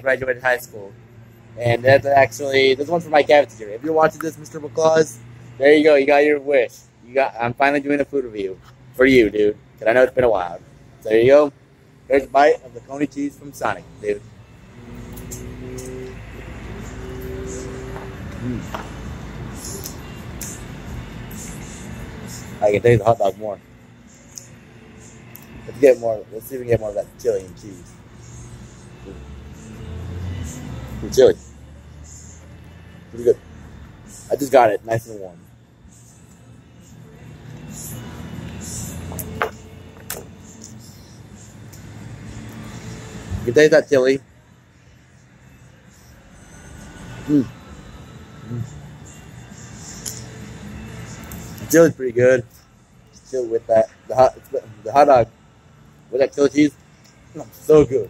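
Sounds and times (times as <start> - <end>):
vehicle engine rumble: 0.0 - 53.6
man humming: 14.8 - 19.0, 48.4 - 48.9.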